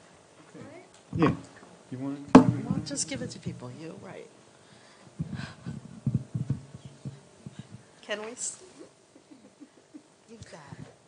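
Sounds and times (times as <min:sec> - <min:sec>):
mic handling noise: 0:00.0 - 0:11.0
footsteps: 0:02.3 - 0:04.2, 0:05.2 - 0:07.9.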